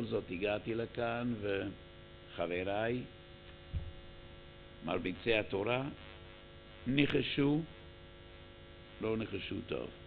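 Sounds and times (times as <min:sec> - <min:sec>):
man speaking: 0:00.0 - 0:03.2, 0:04.8 - 0:06.0, 0:06.8 - 0:07.8, 0:09.0 - 0:10.0
electrical mains hum: 0:00.0 - 0:10.0.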